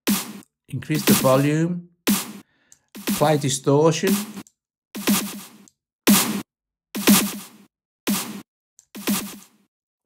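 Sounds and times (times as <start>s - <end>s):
distorted snare drum hits: 0.0s - 1.4s, 2.1s - 2.4s, 3.0s - 4.4s, 5.0s - 8.4s, 9.0s - 9.5s.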